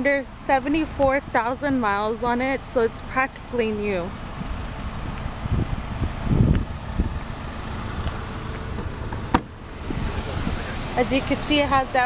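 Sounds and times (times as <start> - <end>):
wind on microphone: 4.4 - 7.3, 9.8 - 10.9.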